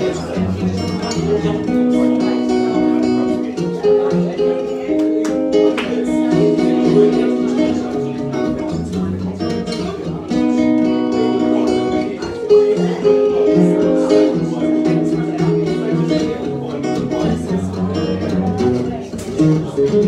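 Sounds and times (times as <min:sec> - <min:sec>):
acoustic guitar playing: 0:00.0 - 0:20.0.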